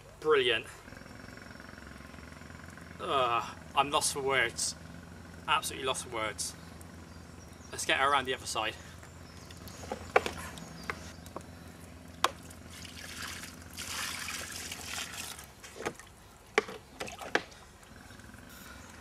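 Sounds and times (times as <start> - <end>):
water poured and splashing: 12.4 - 16.2.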